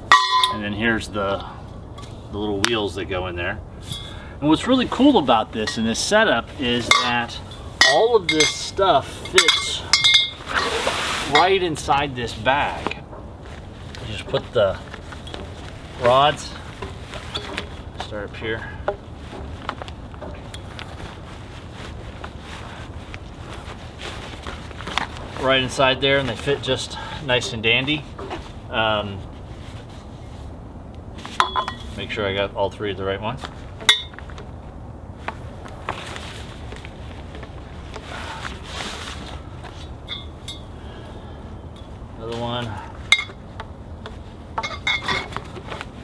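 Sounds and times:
poles knocking: 0.0 - 0.6
fabric rustling: 4.8 - 32.1, 33.4 - 40.7.

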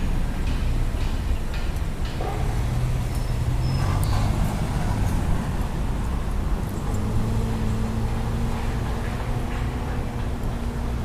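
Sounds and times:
higher engine hum: 0.0 - 11.0
street traffic noise: 0.0 - 11.0
vehicle engine humming: 0.0 - 11.0.

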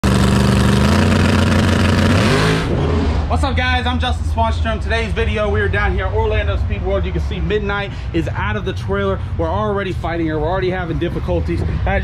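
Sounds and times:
race car engine running loudly: 0.0 - 3.3.

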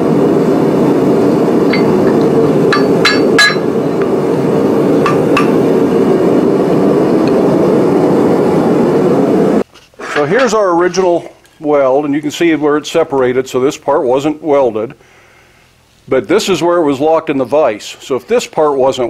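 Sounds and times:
gas forge burner rushing: 0.0 - 11.1
hammer ringing on anvil: 1.7 - 3.9.

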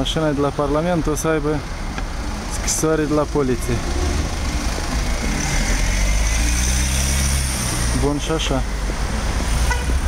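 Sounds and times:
car engine low rumble: 0.0 - 10.0.

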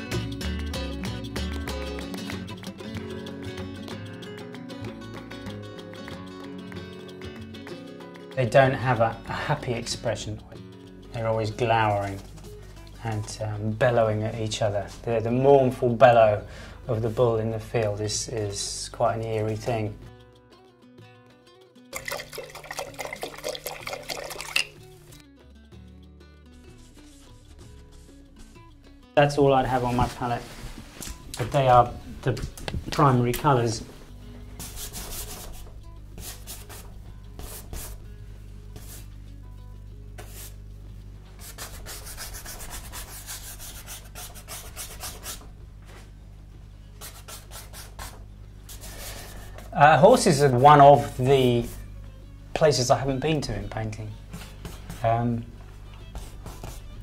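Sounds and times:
soft music of held notes: 0.0 - 57.0
paintbrush swirled in glass jar: 22.0 - 24.8
paintbrush scrubbing strokes: 38.8 - 39.1, 40.2 - 40.6, 48.7 - 49.7.

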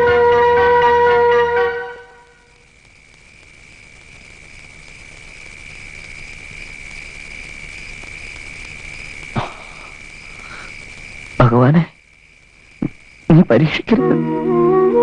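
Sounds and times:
crickets trilling: 0.0 - 15.0.

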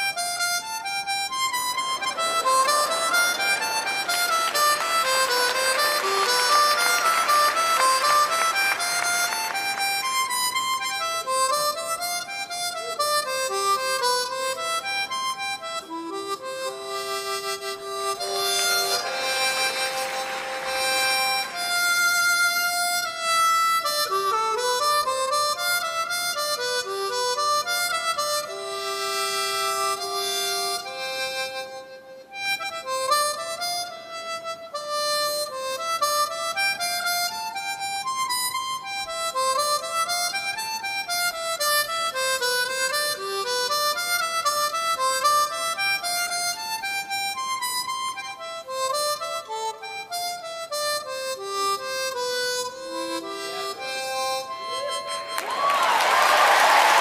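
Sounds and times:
harmonica playing: 0.0 - 57.0.

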